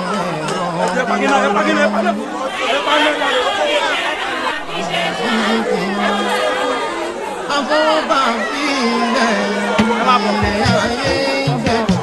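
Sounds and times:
crowd talking and chanting: 0.0 - 12.0.

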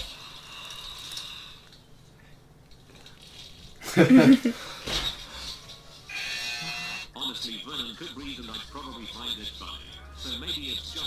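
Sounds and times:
rustling of food and utensils: 0.0 - 6.1
laughter: 3.8 - 4.6.

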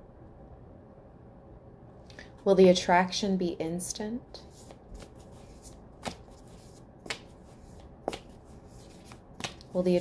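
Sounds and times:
cards being shuffled: 4.4 - 10.0
crisp card slaps: 4.7 - 7.4, 8.1 - 9.8.

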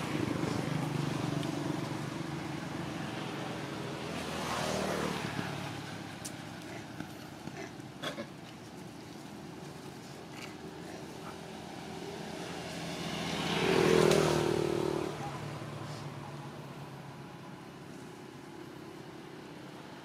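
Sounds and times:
vehicle engine passing by: 0.0 - 7.5, 10.5 - 18.4.

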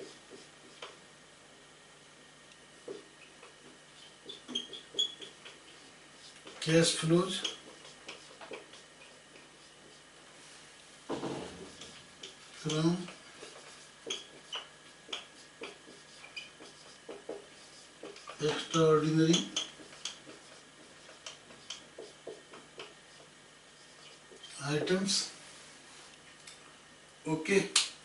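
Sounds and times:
marker pen writing on whiteboard: 0.0 - 1.0, 2.8 - 10.2, 11.2 - 25.3.

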